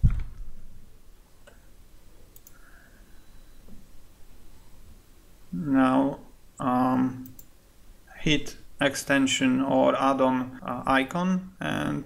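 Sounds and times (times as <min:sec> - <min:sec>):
faint room hiss: 0:00.0 - 0:12.0
computer mouse clicks: 0:02.3 - 0:02.7, 0:07.2 - 0:07.5.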